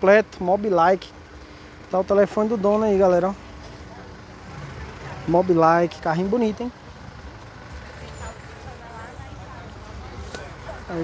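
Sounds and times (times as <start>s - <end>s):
faint voices: 1.8s - 11.0s.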